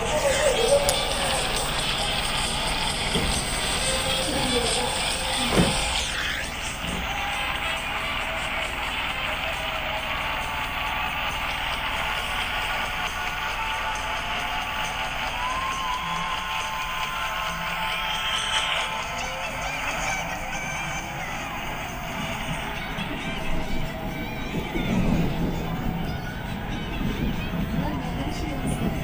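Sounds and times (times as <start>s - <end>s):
subway train rumble and hiss: 0.0s - 29.0s
train motor tones: 0.0s - 29.0s.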